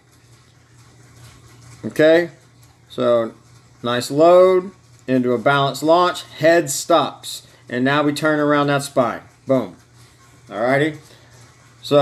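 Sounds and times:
man speaking: 3.0 - 9.8, 10.5 - 11.1.

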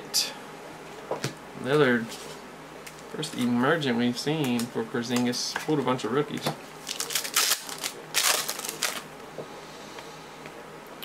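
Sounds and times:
cards rustling and clicking: 4.4 - 9.0.

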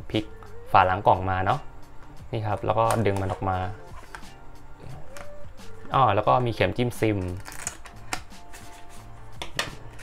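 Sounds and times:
cardboard packaging clicks and taps: 9.4 - 9.8.

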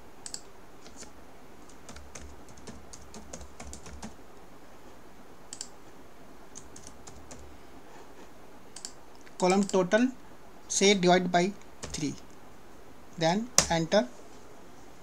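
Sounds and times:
keyboard typing clicks: 0.2 - 1.0, 1.7 - 4.2, 5.5 - 5.8, 8.8 - 9.8, 11.8 - 12.2.

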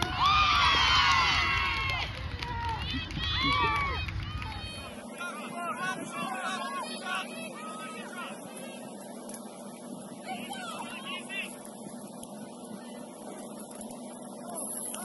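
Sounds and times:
distant shouting voices: 0.0 - 15.0
steady low hum: 0.0 - 15.0.

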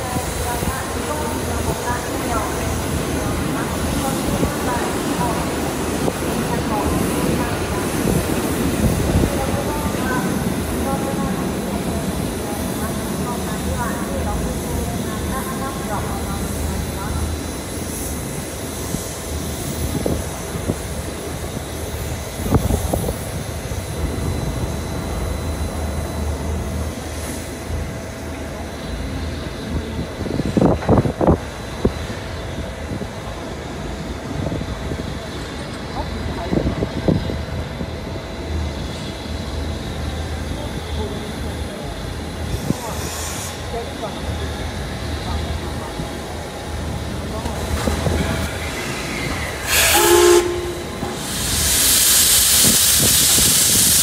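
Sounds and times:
crowd murmuring: 43.8 - 51.6.

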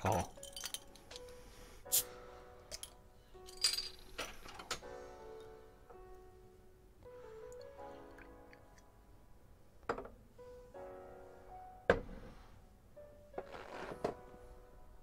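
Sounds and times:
soft background music: 0.0 - 15.0.

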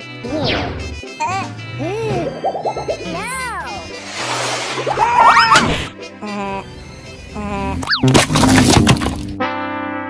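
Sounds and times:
music: 0.0 - 10.0
cartoon voice effects: 1.2 - 3.9, 5.0 - 8.1
whistle-like slide: 3.9 - 5.9
plastic shell cracking and crunching: 7.8 - 9.4.

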